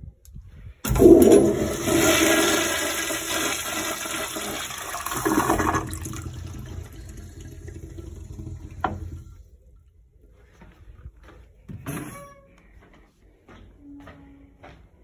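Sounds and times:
toilet flushing: 0:00.9 - 0:09.5.

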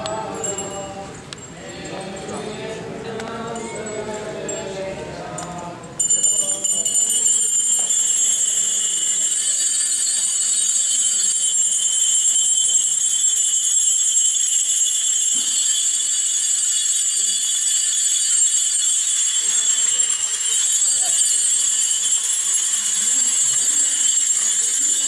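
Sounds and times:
small metal bells jingling: 0:00.0 - 0:25.0.

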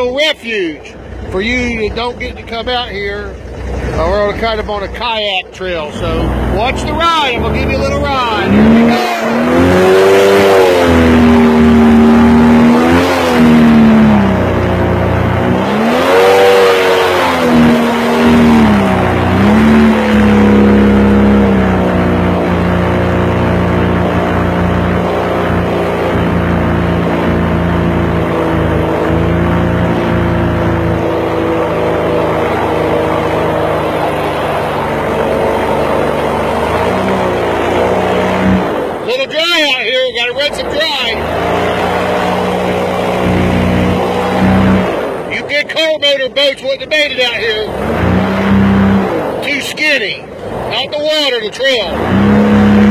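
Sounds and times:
swamp buggy engine running: 0:00.0 - 0:52.9.

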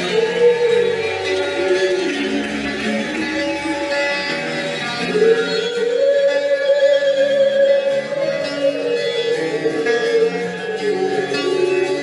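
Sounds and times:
plucked guitar: 0:00.0 - 0:12.0.

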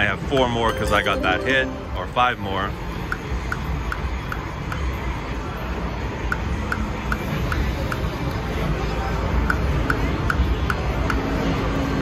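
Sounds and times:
casino background hum: 0:00.0 - 0:02.6.

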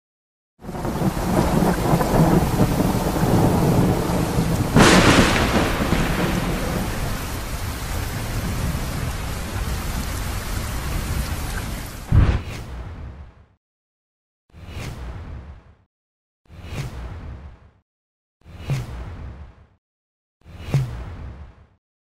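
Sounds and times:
steady rain: 0:00.6 - 0:12.1
sharp thunderclap: 0:00.7 - 0:09.6, 0:12.0 - 0:12.5
low rumbling thunder: 0:00.7 - 0:10.0.

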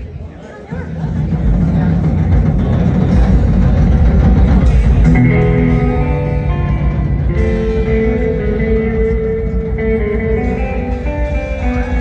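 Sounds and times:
fast rolling drum beat: 0:00.7 - 0:10.0.

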